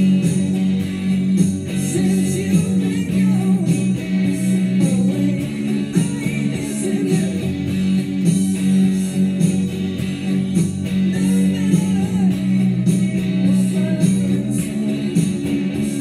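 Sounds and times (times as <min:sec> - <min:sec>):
backing track with steady beat: 0:00.0 - 0:16.0
electric guitar playing: 0:00.0 - 0:16.0.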